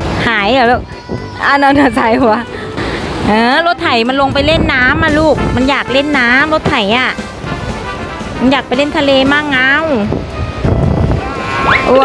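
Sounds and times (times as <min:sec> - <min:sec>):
wave washing over sand: 0:00.0 - 0:12.0
wind on microphone: 0:00.0 - 0:12.0.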